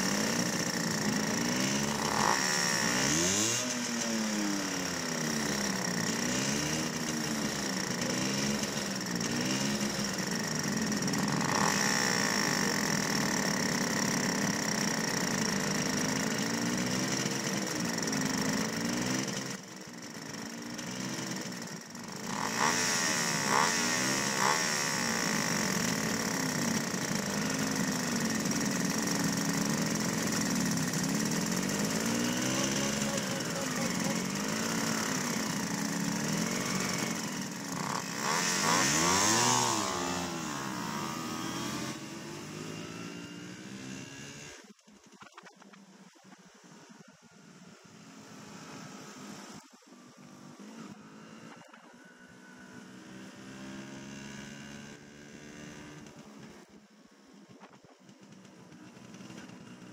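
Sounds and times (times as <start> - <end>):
moped engines idling unevenly: 0.0 - 43.8, 56.0 - 59.9.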